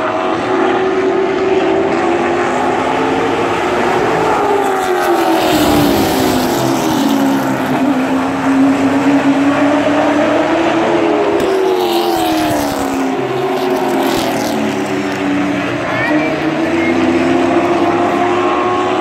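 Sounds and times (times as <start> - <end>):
race car engines passing: 0.0 - 19.0.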